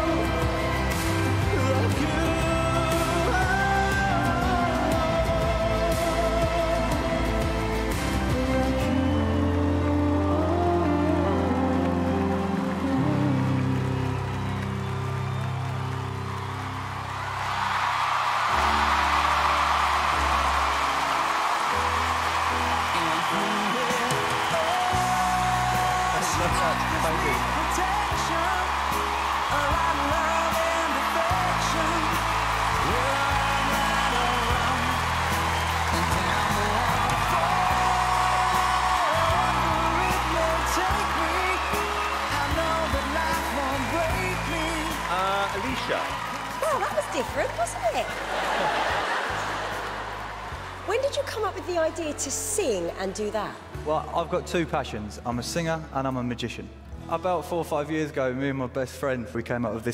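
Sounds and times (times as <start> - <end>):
audience cheering and applause: 0.0 - 54.1
slow music with low chords: 0.0 - 59.9.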